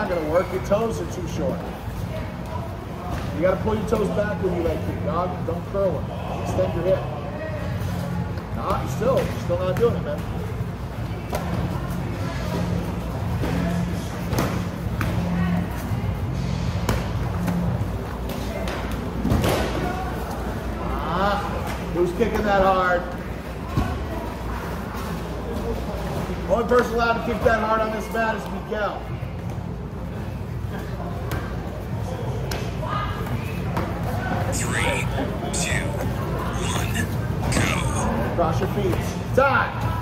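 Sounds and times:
gym chatter: 0.0s - 40.0s
faint background voices: 30.8s - 38.9s.

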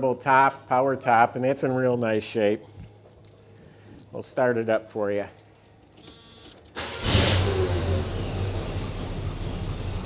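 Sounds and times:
car engine starting and idling: 6.8s - 10.0s.

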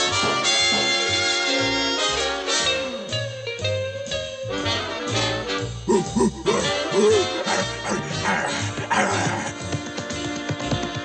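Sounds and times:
jazzy cartoon music: 0.0s - 11.0s
animal-like vocal calls: 5.9s - 9.6s.

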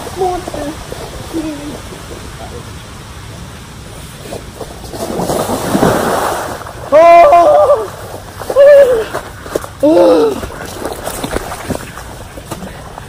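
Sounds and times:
man yelling: 6.9s - 7.9s, 8.5s - 9.1s.

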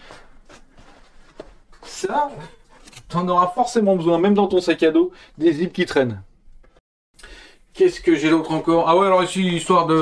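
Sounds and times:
person rustling and shuffling: 0.0s - 3.6s.

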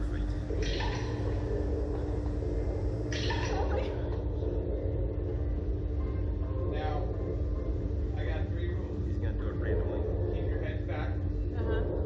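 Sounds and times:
ride machinery rumble and hum: 0.0s - 12.0s.

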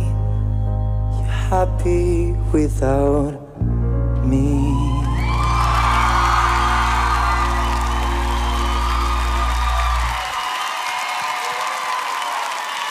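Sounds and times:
audience cheering and applauding: 4.8s - 12.9s.

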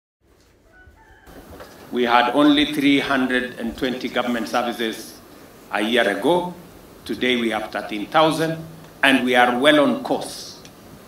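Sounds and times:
room noise hiss: 0.2s - 11.0s
rooster crowing faintly: 0.4s - 2.6s.

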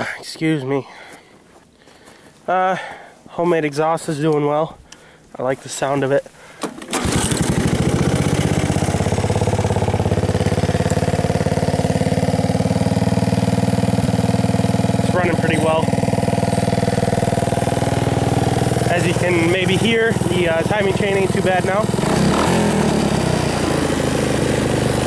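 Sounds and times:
engine idling: 6.9s - 25.0s.

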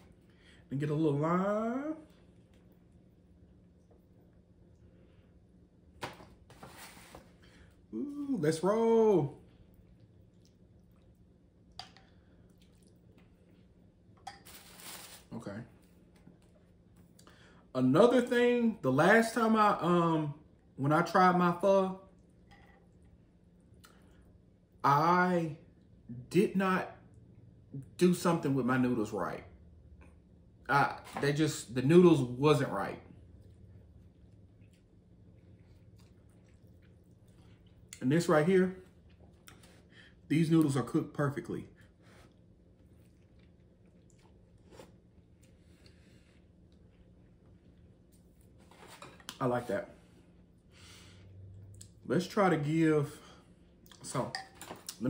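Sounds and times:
faint low hum: 0.0s - 55.0s.

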